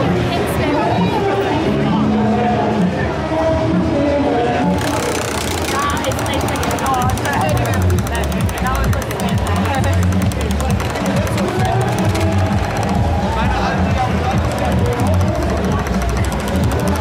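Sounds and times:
prize wheel ticking: 4.8s - 13.2s, 14.4s - 17.0s.

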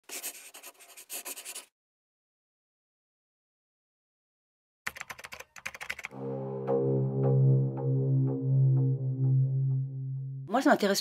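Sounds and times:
pen scratching on paper: 0.0s - 1.7s.

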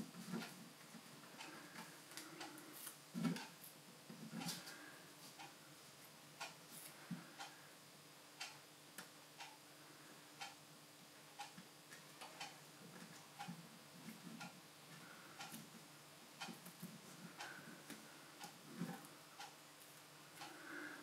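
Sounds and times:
faint steady ticking: 0.0s - 21.0s.

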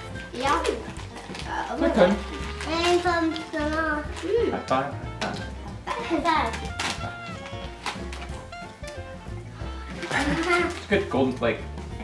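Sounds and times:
background music: 0.0s - 12.0s
children talking and laughing: 5.8s - 6.6s, 10.0s - 10.9s.

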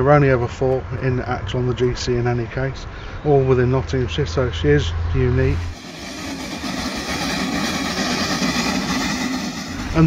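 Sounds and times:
steam locomotive exhaust rushing: 5.3s - 10.0s.

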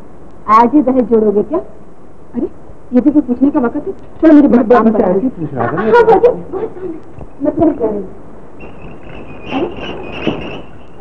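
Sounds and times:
high insect trill: 8.5s - 11.0s.

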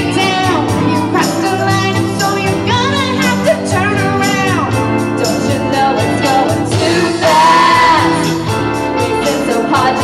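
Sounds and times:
live pop band playing: 0.0s - 10.0s
women singing together: 5.2s - 10.0s.

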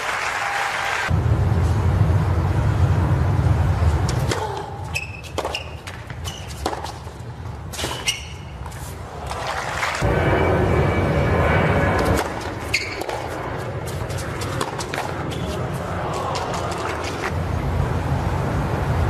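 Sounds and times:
crowd applause: 0.0s - 1.1s, 9.2s - 10.0s
racket hitting tennis ball: 4.0s - 9.6s, 12.0s - 17.3s.

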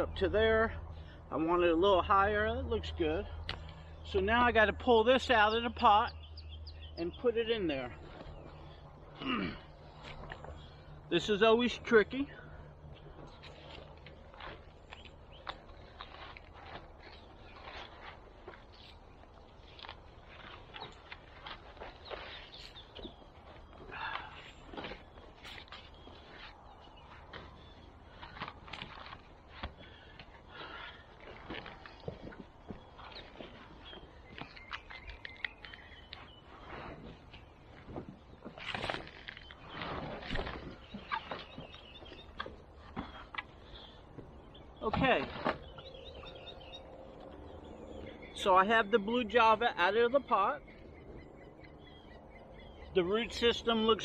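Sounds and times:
footsteps on wood-chip mulch: 7.0s - 50.9s
plastic pot rustling and scraping: 13.1s - 44.0s.

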